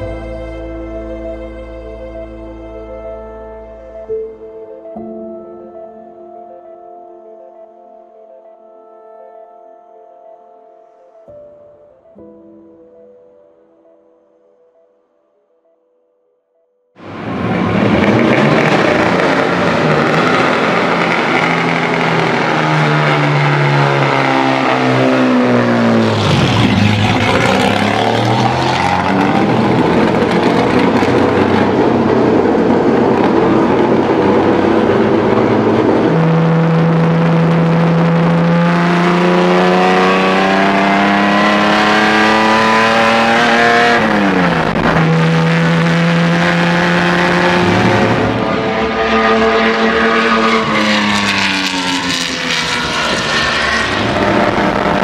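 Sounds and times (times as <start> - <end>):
racing car engine revving: 17.0 - 55.0.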